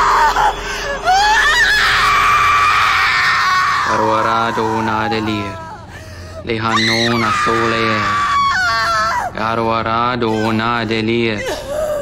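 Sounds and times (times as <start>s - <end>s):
woman screaming in pain: 0.0s - 9.4s, 11.4s - 12.0s.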